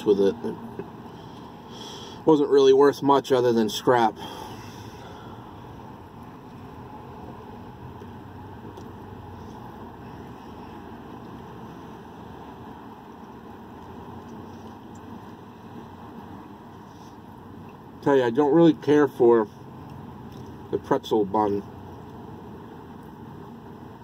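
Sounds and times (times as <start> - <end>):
vehicle rumble with hiss: 0.0 - 24.0.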